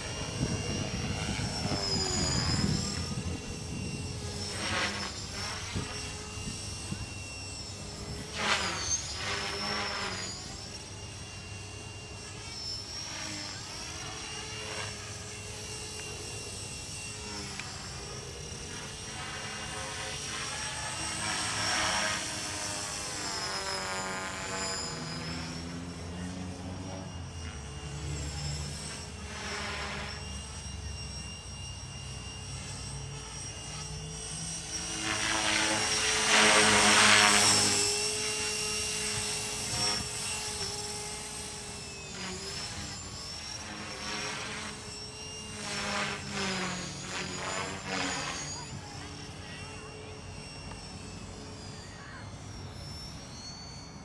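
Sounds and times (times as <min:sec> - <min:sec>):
rc helicopter motor whine: 0:00.0 - 0:54.0.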